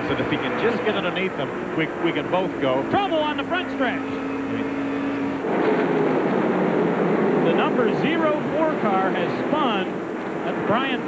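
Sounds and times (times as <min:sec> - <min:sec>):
race car engine droning: 0:00.0 - 0:11.0
racing engines from track: 0:00.0 - 0:11.0.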